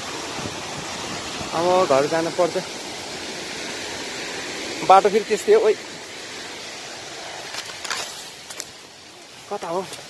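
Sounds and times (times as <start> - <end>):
waterfall rushing over rocks: 0.0 - 10.0.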